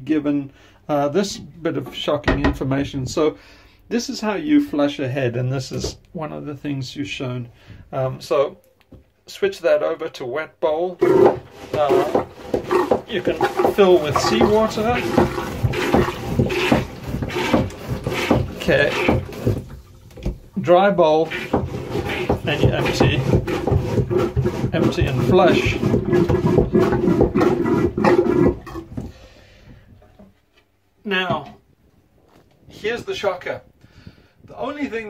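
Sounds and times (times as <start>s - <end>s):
hand pump sloshing water: 11.2s - 20.0s, 21.2s - 28.9s.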